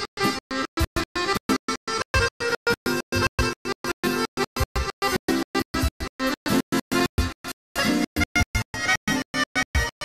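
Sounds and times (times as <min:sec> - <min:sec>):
accordion: 0:00.0 - 0:10.0
keyboard: 0:00.0 - 0:10.0.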